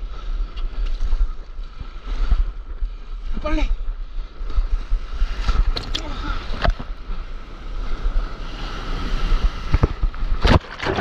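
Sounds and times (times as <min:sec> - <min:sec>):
wind on microphone: 0:00.0 - 0:11.0
rushing surf: 0:01.7 - 0:11.0
sharp water splashes: 0:05.7 - 0:06.1.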